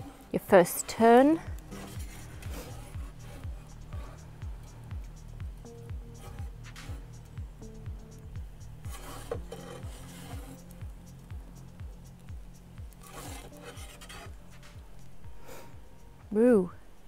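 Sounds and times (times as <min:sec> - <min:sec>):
metal peel scraping oven stone: 0:00.0 - 0:04.2, 0:08.8 - 0:10.8, 0:13.0 - 0:14.8
background music with steady beat: 0:00.0 - 0:17.0.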